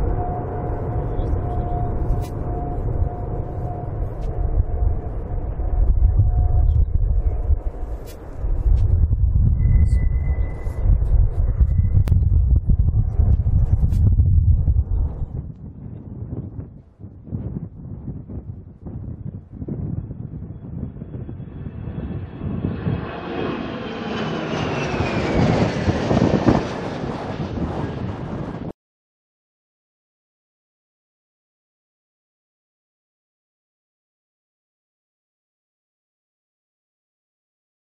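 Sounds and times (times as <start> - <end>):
jet engine whine falling in pitch: 0.0 - 16.4, 19.3 - 28.8
jet engine rumble: 0.0 - 28.8
wind on microphone: 0.0 - 28.8.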